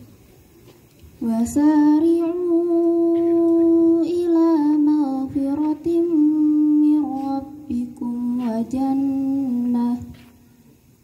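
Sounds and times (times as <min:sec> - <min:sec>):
girl chanting: 0:01.4 - 0:10.2.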